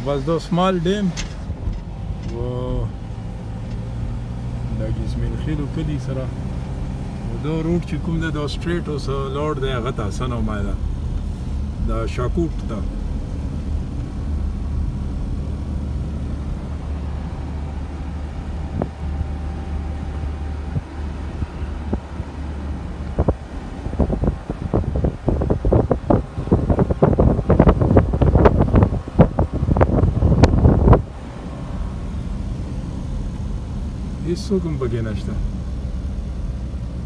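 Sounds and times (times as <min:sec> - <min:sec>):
car road and engine noise: 0:00.0 - 0:37.0
wind buffeting microphone: 0:18.3 - 0:32.0.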